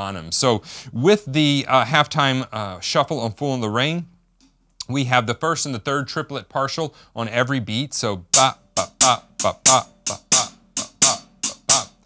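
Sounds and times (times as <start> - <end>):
man singing syllables: 8.2 - 12.0
drumstick ticking closed hi-hat: 8.3 - 12.0.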